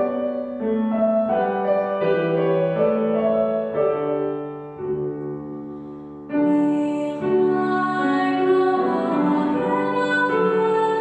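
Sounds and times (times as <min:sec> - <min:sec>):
grand piano playing a hymn: 0:00.0 - 0:11.0.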